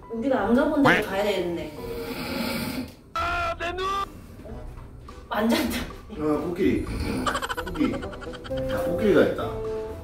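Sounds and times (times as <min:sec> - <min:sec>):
person snoring: 0:01.9 - 0:02.9, 0:06.8 - 0:08.6.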